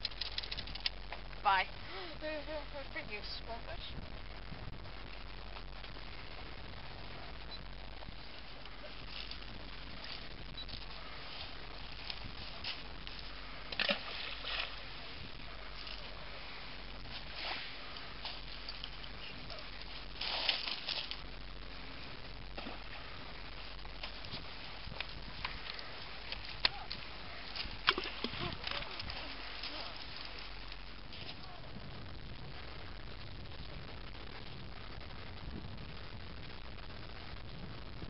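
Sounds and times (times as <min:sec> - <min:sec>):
pebbles clicking: 0:00.0 - 0:01.1
lake water lapping on pebbles: 0:07.8 - 0:21.2, 0:21.8 - 0:31.4.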